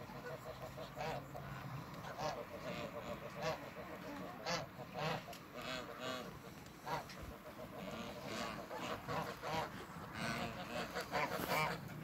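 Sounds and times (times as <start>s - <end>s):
ducks calling: 0.0s - 12.0s.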